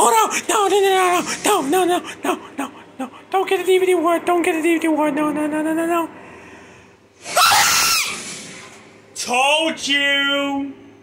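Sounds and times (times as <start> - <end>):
person screaming harshly: 7.3 - 8.2.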